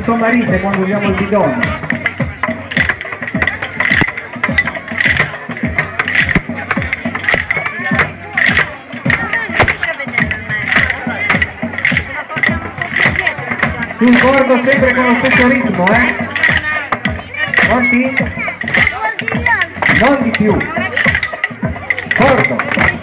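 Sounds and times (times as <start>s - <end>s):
sticks beating plastic barrels: 0.0s - 23.0s.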